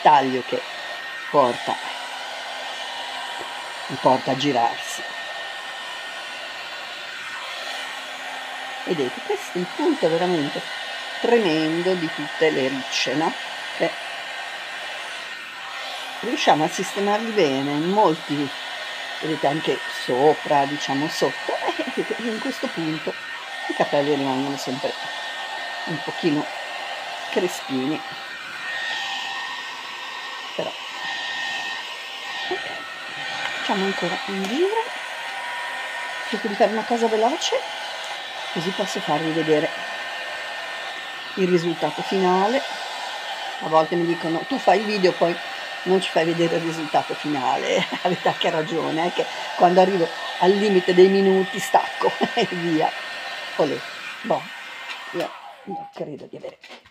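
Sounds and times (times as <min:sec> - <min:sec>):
hot air brush blowing: 0:00.0 - 0:56.0.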